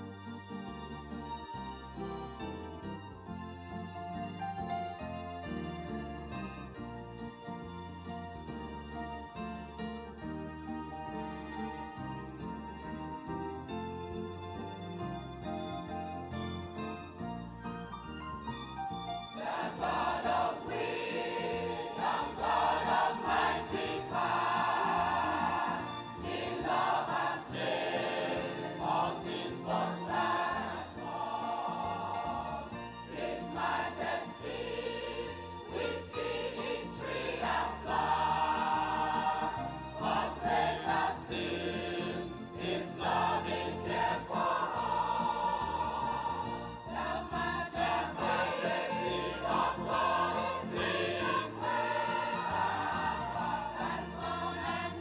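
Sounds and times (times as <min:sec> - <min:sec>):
electronic keyboard accompaniment: 0:00.0 - 0:55.0
choir singing a hymn: 0:19.2 - 0:55.0.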